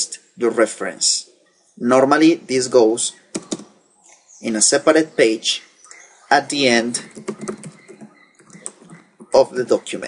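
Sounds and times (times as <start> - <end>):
keyboard keys clicking: 7.0 - 9.4.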